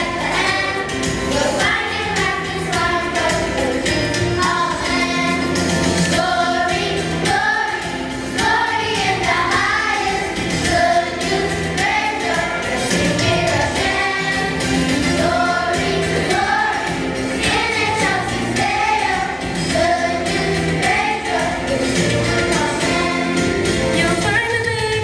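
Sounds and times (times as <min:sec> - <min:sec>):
children's choir singing: 0:00.0 - 0:24.2
instrumental accompaniment with bass: 0:00.0 - 0:25.0.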